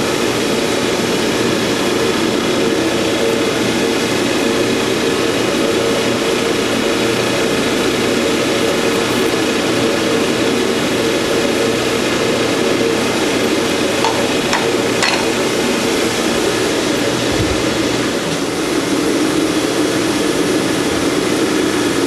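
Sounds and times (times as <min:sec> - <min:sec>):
machinery droning: 0:00.0 - 0:22.0.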